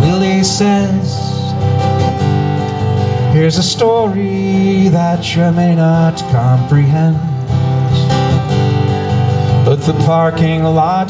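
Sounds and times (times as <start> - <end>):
guitar strumming: 0.0 - 11.0.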